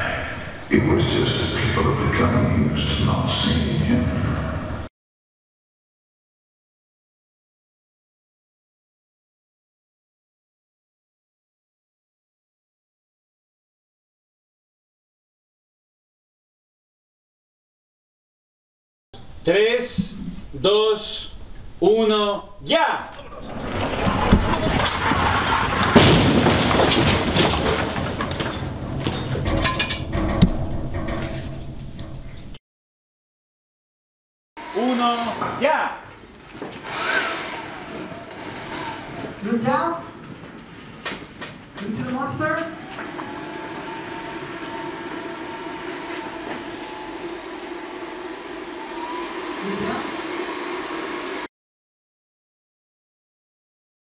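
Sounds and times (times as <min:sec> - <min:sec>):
steady mechanical hum: 0:19.2 - 0:24.7, 0:34.6 - 0:51.5
furniture crashing down: 0:23.2 - 0:32.3
clatter and rumble of falling debris: 0:23.2 - 0:32.5
sharp impacts: 0:25.8 - 0:32.6.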